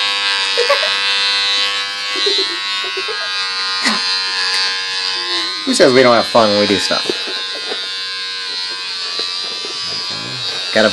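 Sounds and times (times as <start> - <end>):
electric hair clippers buzzing: 0.0 - 10.9.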